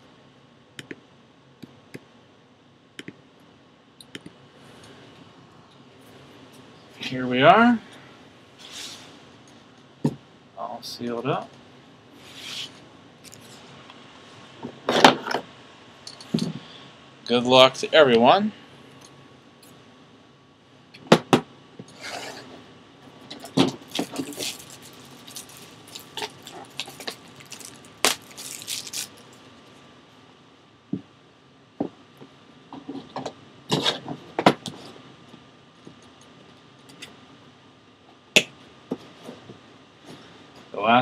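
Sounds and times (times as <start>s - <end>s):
plastic wrap crinkling: 23.4s - 29.5s.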